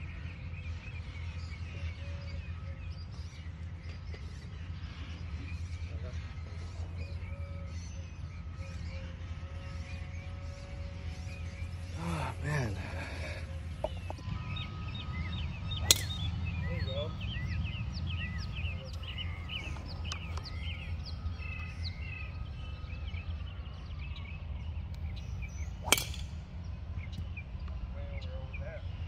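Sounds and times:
small birds chirping: 0:00.0 - 0:29.0
low wind rumble: 0:04.6 - 0:29.0
golf club striking ball: 0:13.9 - 0:20.8, 0:25.4 - 0:26.4.

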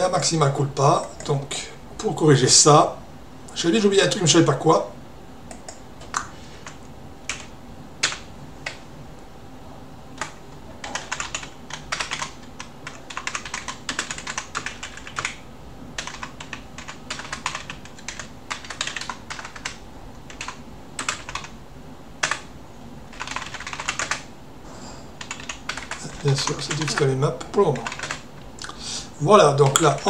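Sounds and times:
typing on computer keyboard: 0:10.2 - 0:15.4, 0:16.0 - 0:21.5, 0:22.2 - 0:22.5, 0:23.1 - 0:24.3, 0:25.2 - 0:28.3.

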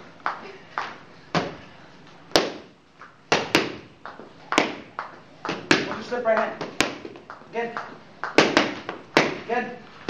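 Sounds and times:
boxing gloves hitting focus mitts: 0:00.8 - 0:01.6, 0:02.3 - 0:02.7, 0:03.3 - 0:09.8.

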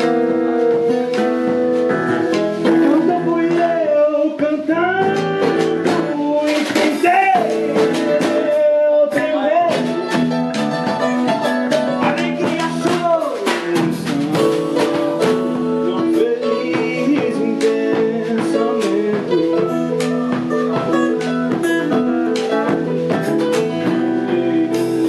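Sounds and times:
bass guitar: 0:00.0 - 0:25.0
drum kit: 0:00.0 - 0:25.0
strummed acoustic guitar: 0:00.0 - 0:25.0
hand drum struck with stick: 0:05.0 - 0:25.0.

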